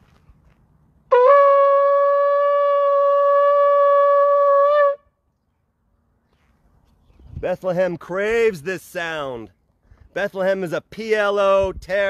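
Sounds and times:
shofar long held note: 1.1 - 5.1.

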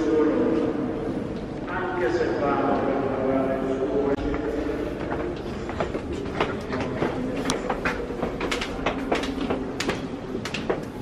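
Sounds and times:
footsteps on stone floor: 4.2 - 11.0.

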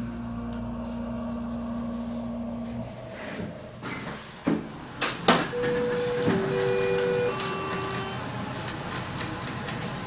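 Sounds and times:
elevator two-tone chime: 5.5 - 8.3.

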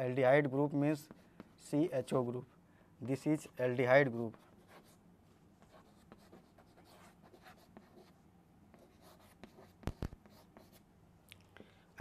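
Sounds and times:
chalk scratching on blackboard: 5.6 - 8.1, 8.7 - 10.8
sharp chalk taps: 8.7 - 10.8.

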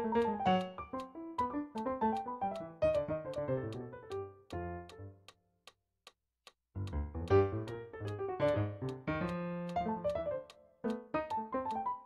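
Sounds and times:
digital piano chords: 0.0 - 5.3, 6.8 - 12.0
sharp ticks keeping a beat: 0.0 - 5.4, 6.5 - 12.0.

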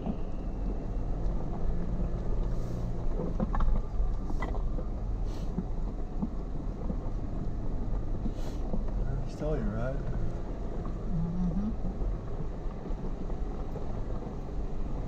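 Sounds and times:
car engine low rumble: 0.0 - 15.0.

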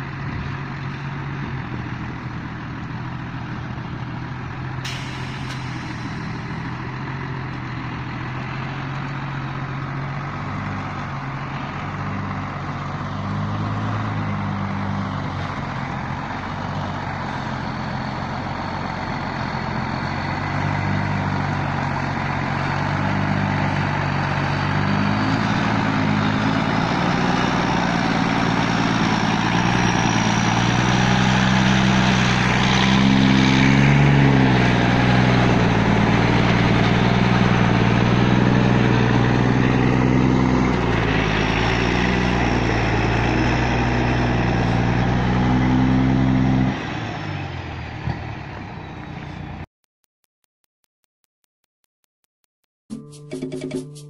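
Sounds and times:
heavy truck engine: 0.0 - 49.7.

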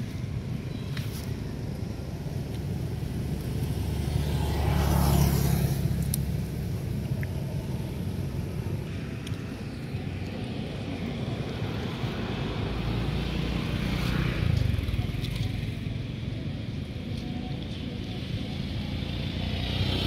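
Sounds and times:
traffic rumble: 0.0 - 20.0
vehicle passing by: 3.0 - 9.6, 10.4 - 15.8, 18.4 - 20.0.

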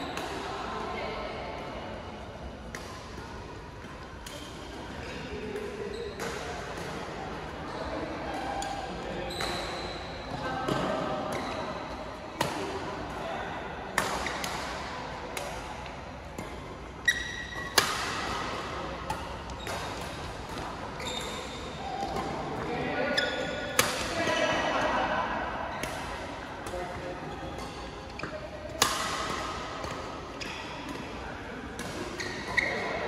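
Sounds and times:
rackets striking shuttlecock: 16.4 - 22.7, 23.8 - 24.2.

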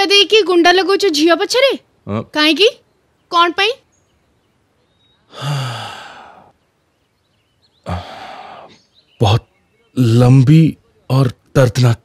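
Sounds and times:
man sighing heavily: 5.3 - 6.5, 7.8 - 8.8.

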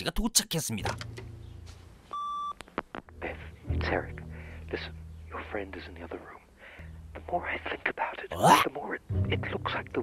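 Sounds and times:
recorded man's voice speaking: 0.0 - 1.0, 7.2 - 10.0
answering machine beep: 2.1 - 2.6.

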